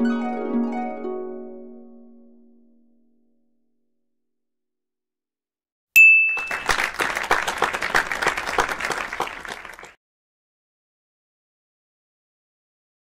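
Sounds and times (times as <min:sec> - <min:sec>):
bright ding: 0:06.0 - 0:06.8
applause and clapping: 0:06.3 - 0:10.0.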